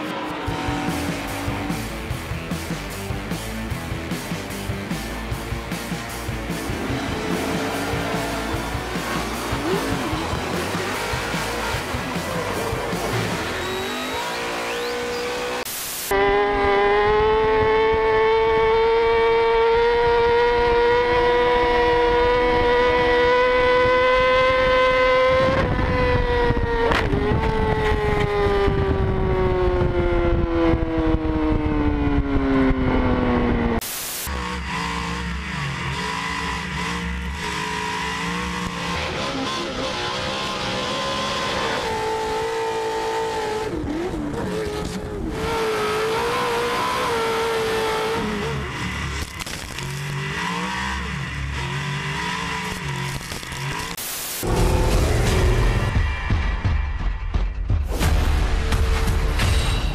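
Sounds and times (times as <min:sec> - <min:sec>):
high-revving engine: 0:00.0 - 0:56.0.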